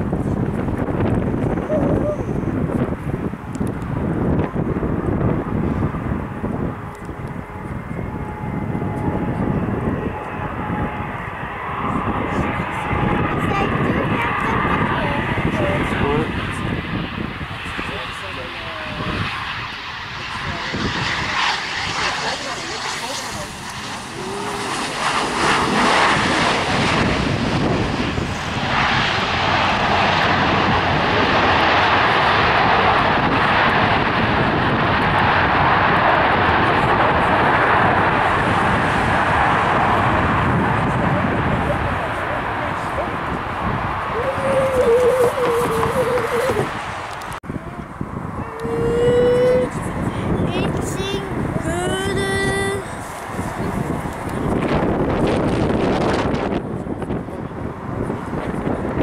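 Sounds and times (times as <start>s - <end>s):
jet engine noise: 0.0s - 59.0s
wind buffeting microphone: 0.0s - 59.0s.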